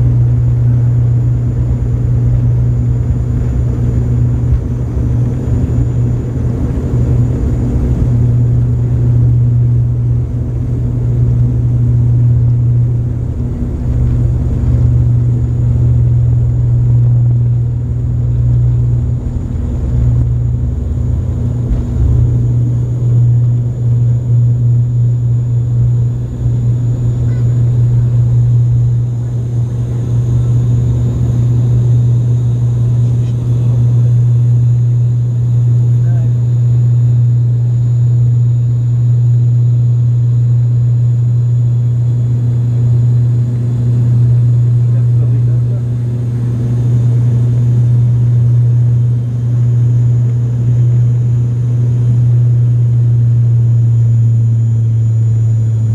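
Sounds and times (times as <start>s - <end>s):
airliner engines droning in cabin: 0.0s - 55.9s.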